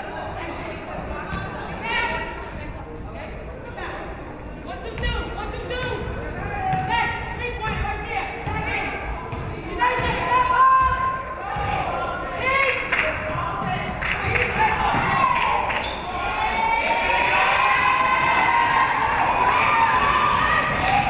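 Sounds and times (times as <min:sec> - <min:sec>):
people shouting: 0:14.4 - 0:21.0.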